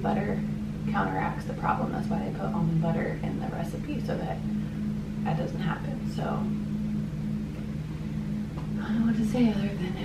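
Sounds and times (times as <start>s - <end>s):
low room tone hum: 0.0s - 10.0s.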